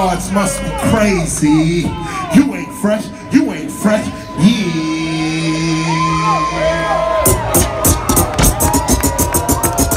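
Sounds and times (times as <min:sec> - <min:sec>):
crowd whooping: 0:01.5 - 0:09.9
drum beat with fast hi-hats: 0:07.2 - 0:09.9.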